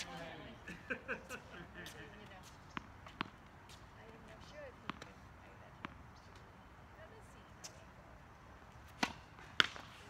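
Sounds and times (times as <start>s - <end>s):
tennis ball bouncing on hard court: 1.8s - 6.4s, 8.8s - 10.0s
racket hitting tennis ball: 2.4s - 5.2s, 8.8s - 10.0s.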